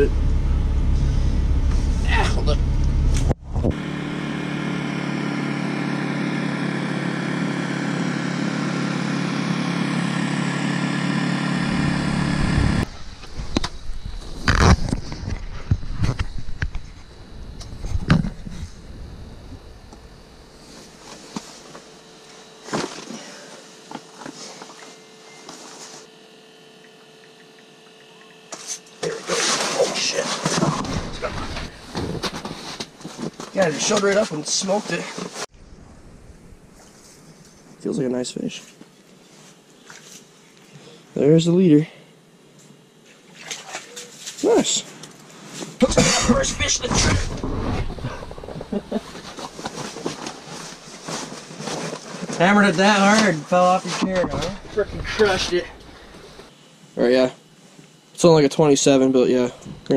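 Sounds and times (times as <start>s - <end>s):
vehicle engine running: 0.0s - 38.0s, 45.8s - 56.5s
faint steady hum: 0.0s - 59.9s.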